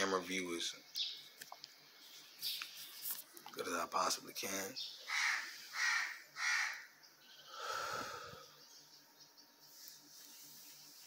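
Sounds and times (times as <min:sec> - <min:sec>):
bird harsh calls: 0:04.7 - 0:11.0.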